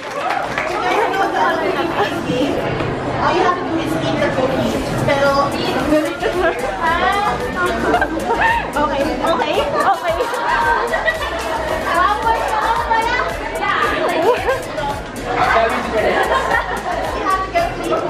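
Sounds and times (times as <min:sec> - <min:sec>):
background music: 0:00.8 - 0:18.0
people talking over one another: 0:00.8 - 0:18.0.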